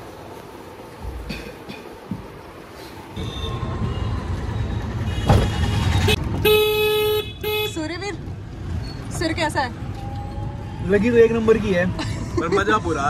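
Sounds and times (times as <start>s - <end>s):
street traffic low rumble: 0.0s - 13.0s
vehicle horn honking: 5.0s - 7.8s.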